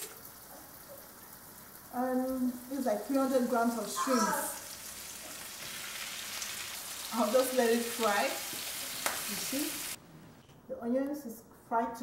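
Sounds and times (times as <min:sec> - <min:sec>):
onions frying in oil: 0:00.0 - 0:10.0.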